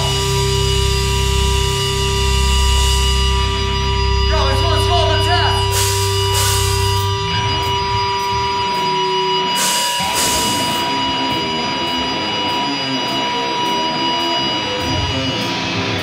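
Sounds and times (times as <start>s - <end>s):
bass notes: 0.0s - 12.6s
cymbal crash: 0.0s - 13.8s
guitar amplifier feedback tones: 0.0s - 16.0s.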